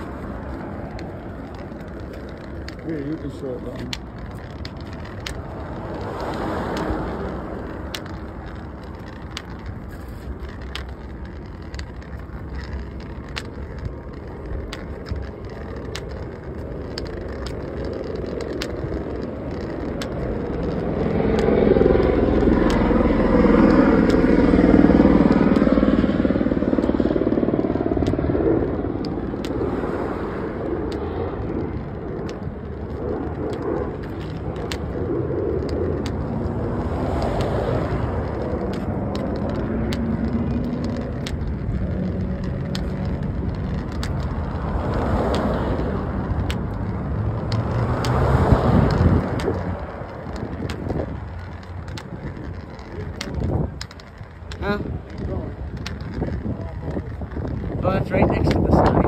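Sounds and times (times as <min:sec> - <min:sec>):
vehicle passing close by: 0:00.0 - 0:12.0, 0:17.0 - 0:59.0
road traffic noise: 0:00.0 - 0:59.0.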